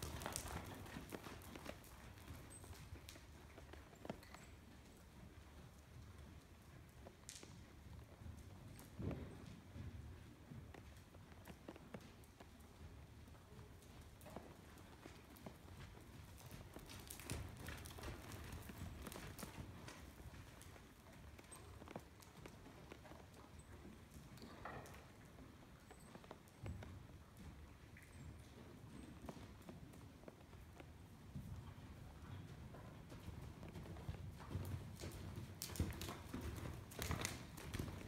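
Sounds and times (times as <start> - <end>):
horse hoofbeats on soft dirt: 0.0 - 38.0.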